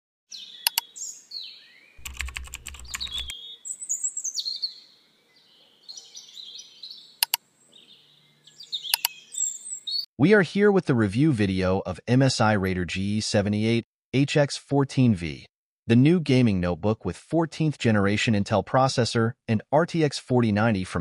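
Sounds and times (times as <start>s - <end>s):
bird chirps: 0.3s - 10.1s
mouse button clicks: 0.6s - 0.9s, 8.9s - 9.2s.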